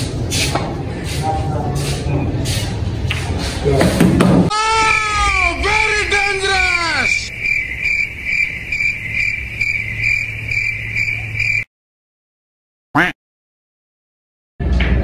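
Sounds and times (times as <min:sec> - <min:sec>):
falling wobbling wails: 0:04.5 - 0:11.6
high cricket-like chirping: 0:04.8 - 0:11.7.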